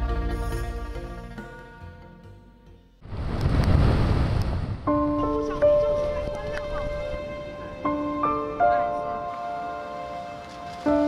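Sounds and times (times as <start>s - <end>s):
big waves breaking: 3.0s - 5.2s
wind: 3.0s - 11.0s
gentle intro music: 4.8s - 11.0s.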